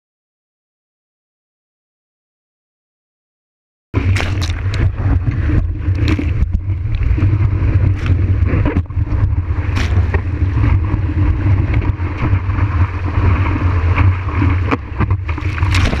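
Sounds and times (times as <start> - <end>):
water rushing: 4.0 - 16.0
water splashes: 4.0 - 16.0.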